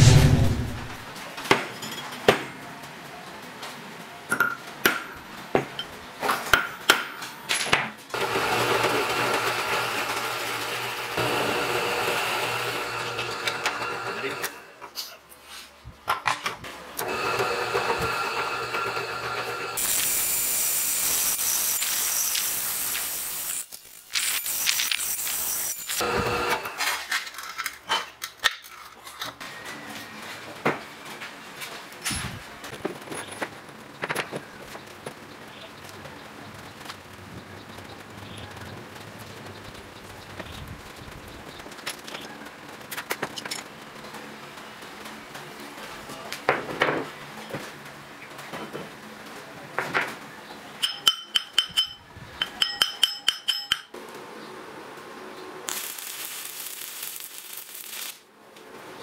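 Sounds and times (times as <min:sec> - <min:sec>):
drill press boring steel: 0:08.2 - 0:14.7, 0:17.0 - 0:26.7
metal taps and clinks: 0:50.8 - 0:53.9.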